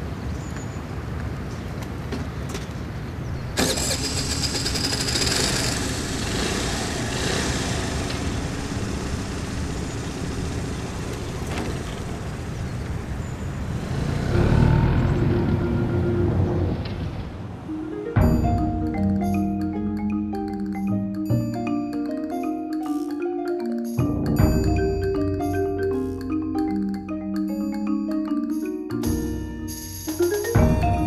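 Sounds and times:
motor scooter engine running: 3.6s - 15.4s.

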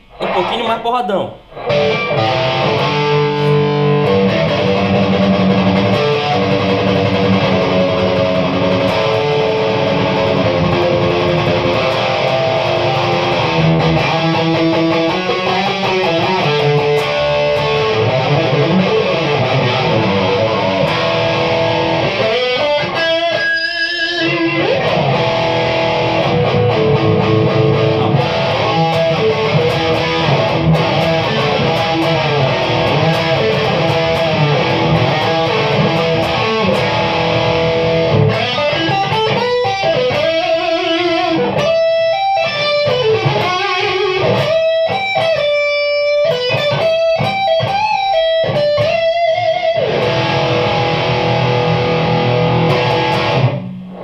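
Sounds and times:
distorted electric guitar: 0.0s - 54.0s.

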